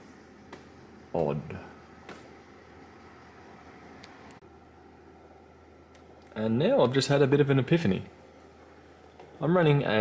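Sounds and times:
computer fan hum and hiss: 0.0s - 10.0s.

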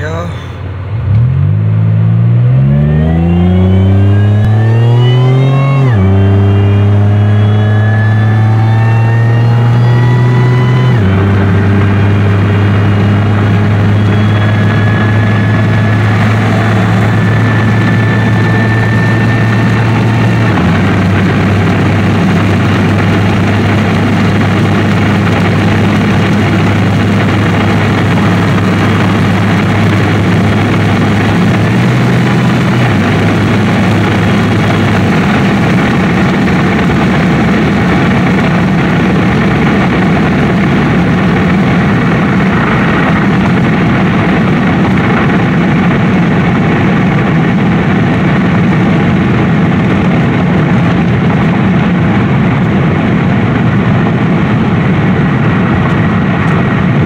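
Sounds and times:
car engine accelerating hard: 0.0s - 57.0s.

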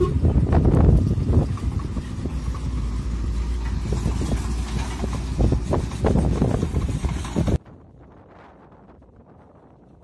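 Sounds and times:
diesel truck engine rumble: 0.0s - 10.0s.

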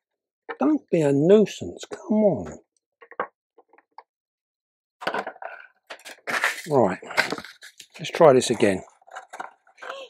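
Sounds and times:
plastic cup clicking and rustling: 8.6s - 10.0s.

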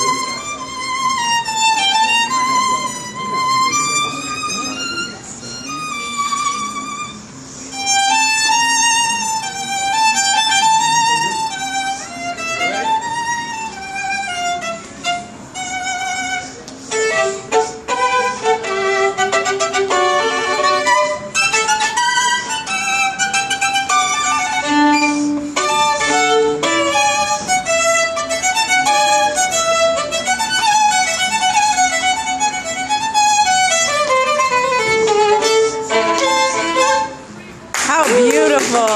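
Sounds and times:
solo violin melody: 0.0s - 38.3s.

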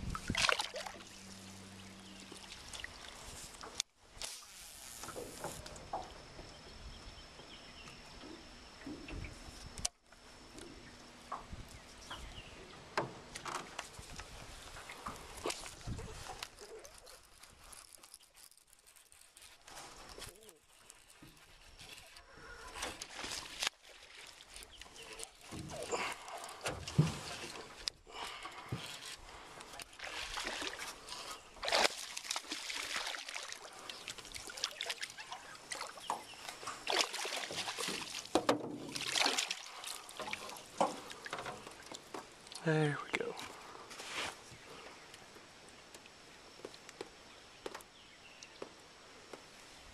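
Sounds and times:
water splashing and sloshing: 0.0s - 4.4s, 8.2s - 47.8s.

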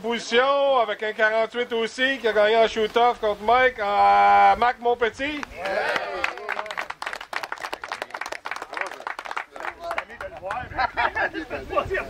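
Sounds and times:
men calling out: 5.4s - 6.9s
people clapping: 5.4s - 11.0s.

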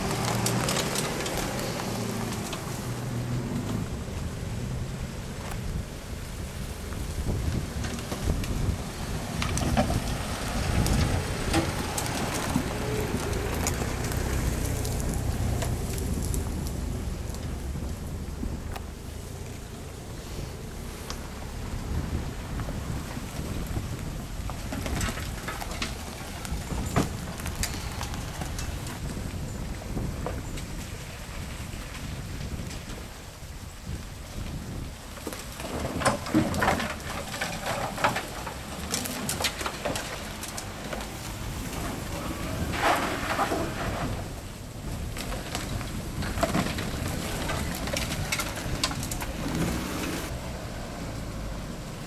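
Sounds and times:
twigs crackling and snapping: 0.0s - 3.8s, 6.9s - 19.6s, 23.5s - 29.3s, 35.1s - 43.4s, 44.8s - 50.4s
low engine rumble: 0.0s - 52.0s.

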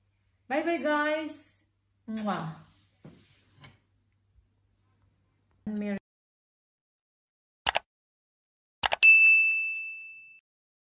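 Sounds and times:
bright bell ding: 9.0s - 10.4s.

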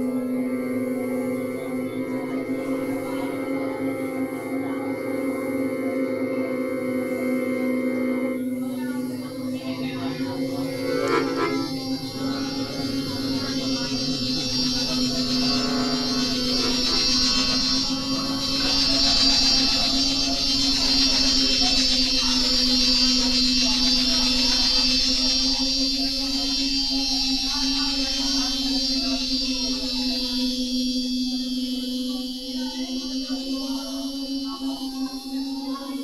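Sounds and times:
low drone: 0.0s - 36.0s
high shimmering layer: 9.1s - 30.0s.

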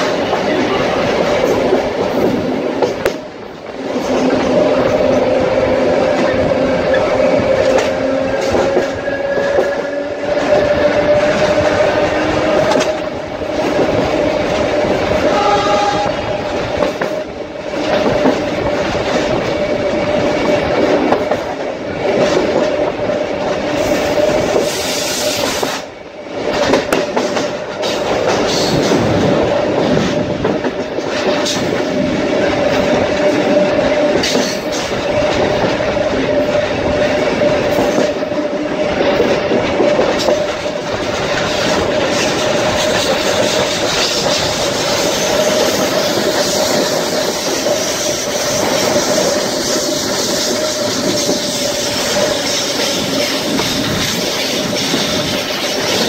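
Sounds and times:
train wheels clattering on rails: 0.0s - 56.0s
train whine: 0.0s - 56.0s.

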